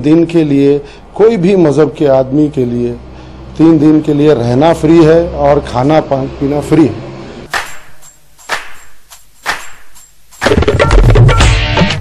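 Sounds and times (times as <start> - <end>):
whip-like percussion cracks: 7.5 - 11.3
background music: 7.5 - 12.0.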